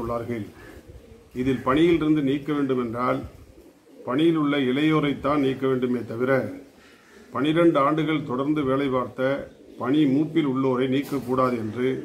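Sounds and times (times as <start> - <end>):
man speaking: 0.0 - 0.6, 1.3 - 3.3, 4.1 - 6.7, 7.3 - 12.0
dove cooing: 0.0 - 12.0.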